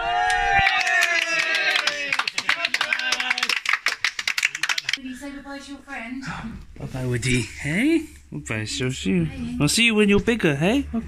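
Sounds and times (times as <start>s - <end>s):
voices shouting a cheer: 0.0s - 3.5s
small group clapping: 0.0s - 5.0s.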